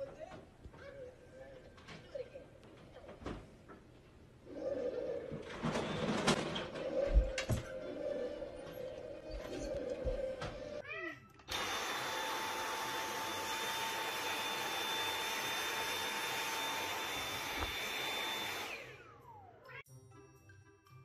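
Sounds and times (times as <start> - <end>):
tv sound: 0.0 - 19.8
vacuum cleaner with high whine: 11.5 - 19.5.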